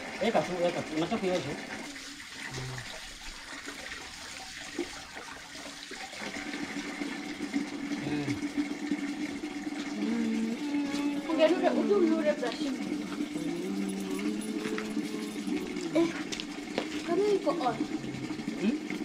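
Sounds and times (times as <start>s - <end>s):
water running from tap: 0.0s - 19.0s.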